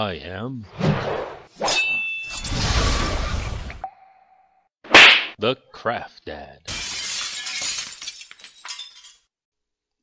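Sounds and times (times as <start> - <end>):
glass breaking: 6.7 - 9.3
glass pieces tinkling: 6.7 - 9.3.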